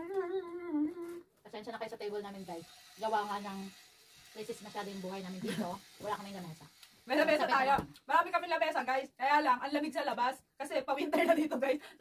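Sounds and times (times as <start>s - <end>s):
woman humming: 0.0s - 1.3s.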